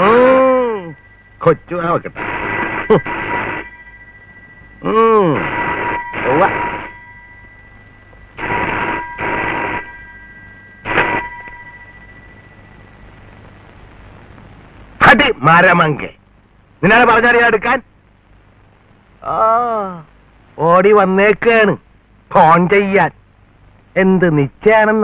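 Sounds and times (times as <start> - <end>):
telephone bell ringing: 0.0 - 13.4.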